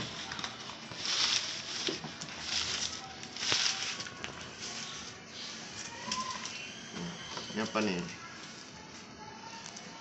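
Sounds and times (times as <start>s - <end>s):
packing material rustling: 0.0s - 6.6s.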